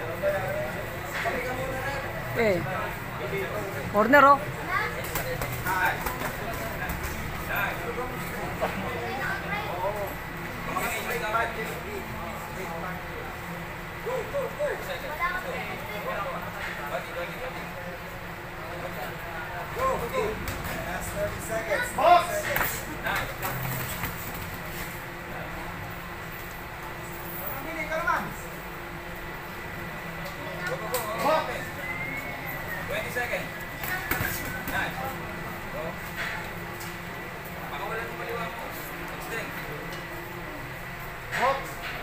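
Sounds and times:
crowded gym noise: 0:00.0 - 0:42.0
spectators calling and chatting: 0:00.0 - 0:42.0.

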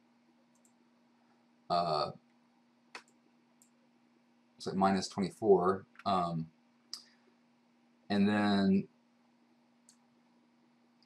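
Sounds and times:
faint steady hum: 0:00.0 - 0:11.0
computer mouse click: 0:00.5 - 0:00.8, 0:09.8 - 0:10.0.

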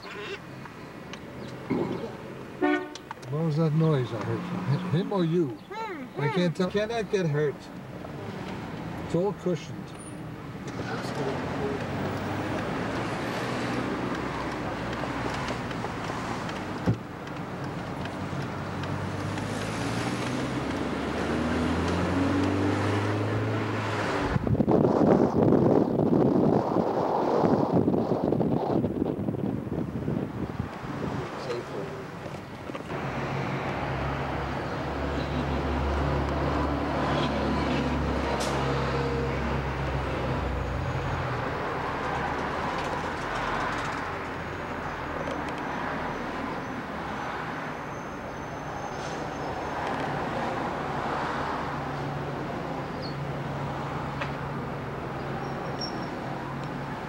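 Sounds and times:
street traffic: 0:00.0 - 0:57.0.

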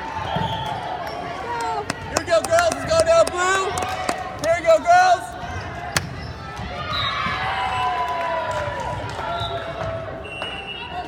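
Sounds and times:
volleyball smack: 0:06.0 - 0:06.3.

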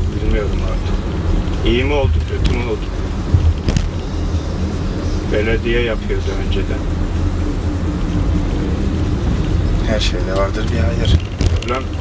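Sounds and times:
engine and road noise in cabin: 0:00.0 - 0:12.0.

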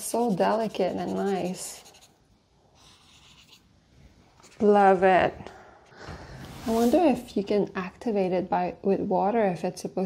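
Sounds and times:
brush pen scratching paper: 0:00.0 - 0:02.2, 0:02.8 - 0:03.7, 0:04.4 - 0:04.9.

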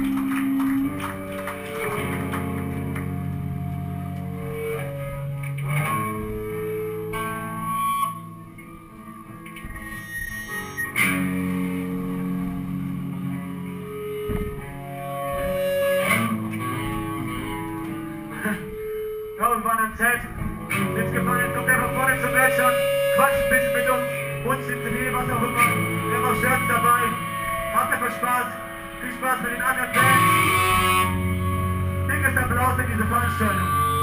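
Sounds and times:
bass guitar: 0:00.0 - 0:34.0
clean electric guitar notes: 0:00.0 - 0:34.0
voice over microphone: 0:19.4 - 0:30.5, 0:32.1 - 0:34.0.

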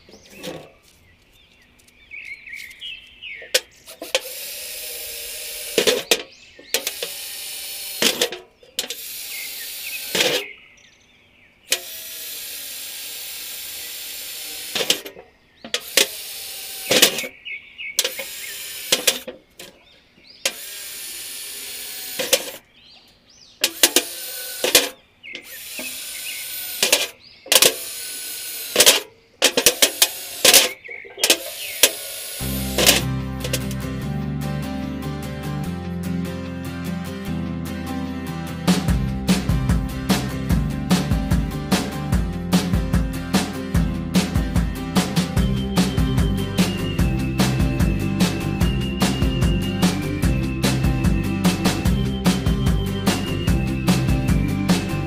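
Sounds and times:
sharp clicks: 0:00.0 - 0:10.5, 0:11.7 - 0:17.4, 0:18.0 - 0:19.8, 0:20.4 - 0:33.8
electric drill boring sheet metal: 0:03.8 - 0:10.5, 0:11.7 - 0:17.3, 0:18.0 - 0:19.7, 0:20.4 - 0:22.6, 0:23.6 - 0:33.8.

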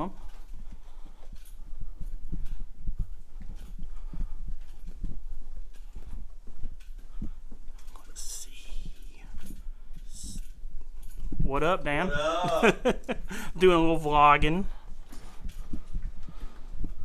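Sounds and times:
footsteps on hard floor: 0:00.1 - 0:08.1, 0:14.4 - 0:17.0.

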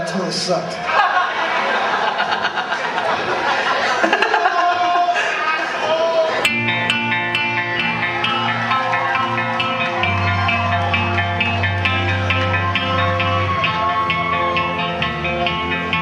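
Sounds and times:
crowd chatter: 0:00.0 - 0:16.0
bass guitar notes: 0:06.3 - 0:16.0
live rock band playing: 0:06.4 - 0:16.0
picked electric guitar figure: 0:06.4 - 0:16.0.

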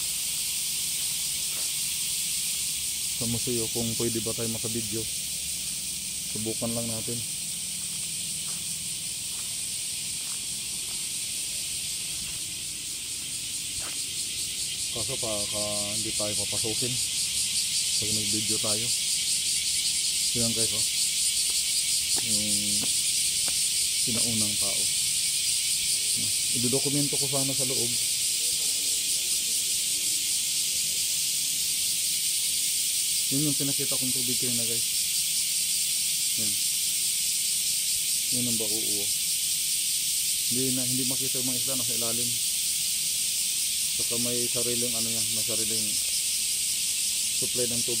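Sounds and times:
high-pitched hiss: 0:00.0 - 0:48.0
footsteps on stone paving: 0:01.0 - 0:01.8, 0:07.7 - 0:11.3, 0:12.0 - 0:14.2, 0:21.4 - 0:24.3.

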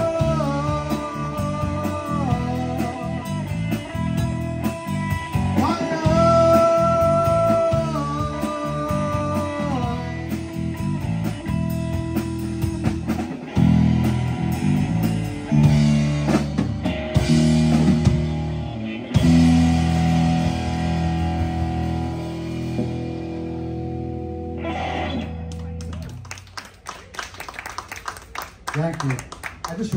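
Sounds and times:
live rock band playing: 0:00.0 - 0:26.9.

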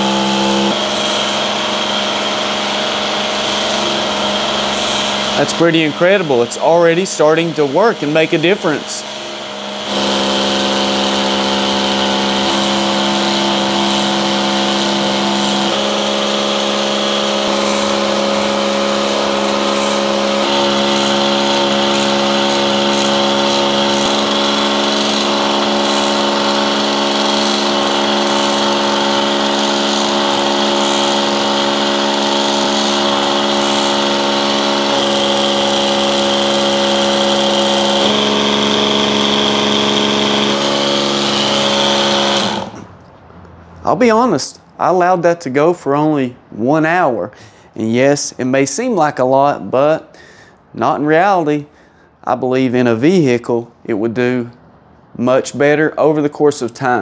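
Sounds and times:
electric pump humming: 0:00.0 - 0:43.6.

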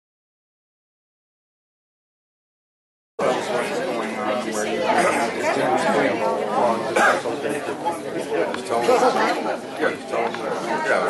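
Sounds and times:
crowd chatter: 0:03.2 - 0:11.0.

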